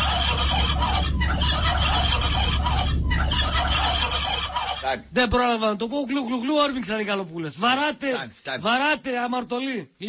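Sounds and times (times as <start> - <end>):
turkeys gobbling: 0.0 - 5.1
steady low hum: 0.0 - 6.0.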